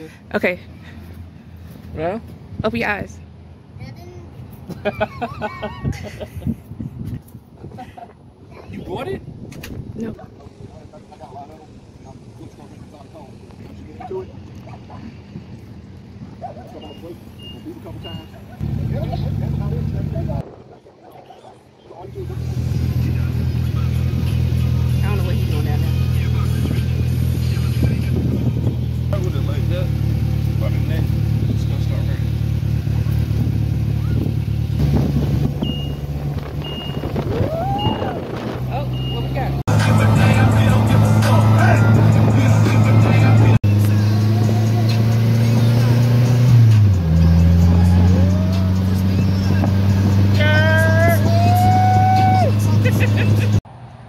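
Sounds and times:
car engine running: 22.2s - 51.5s
music playing: 39.7s - 53.6s.

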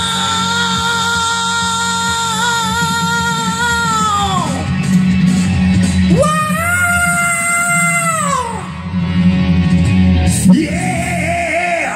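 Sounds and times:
man yelling vocal: 0.0s - 4.7s, 6.1s - 8.9s
hard rock backing track: 0.0s - 11.9s.

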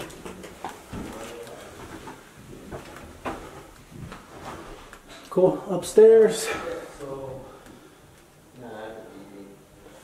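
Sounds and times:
footsteps: 0.0s - 5.3s.

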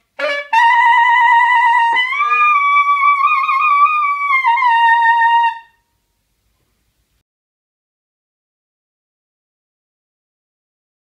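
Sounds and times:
saxophone high note: 0.2s - 5.8s.

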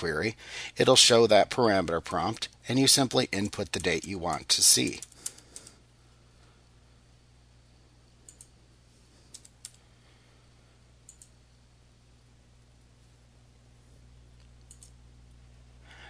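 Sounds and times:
low steady hum: 0.0s - 16.0s
computer keyboard clicks: 3.4s - 5.7s, 8.3s - 8.5s, 9.3s - 9.8s, 11.1s - 11.3s, 14.6s - 15.0s.

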